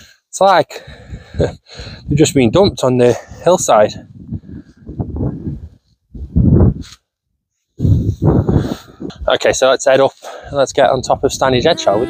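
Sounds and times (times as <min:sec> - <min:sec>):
wind buffeting microphone: 0:00.9 - 0:06.9, 0:07.8 - 0:09.6, 0:10.9 - 0:12.0.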